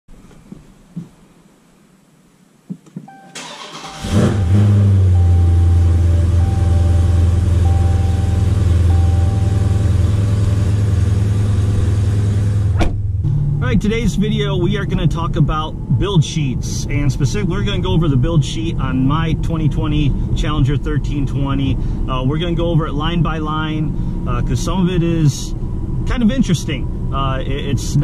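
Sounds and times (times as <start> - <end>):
warning chime: 3.1 - 10.9
car engine starting and idling: 3.1 - 28.0.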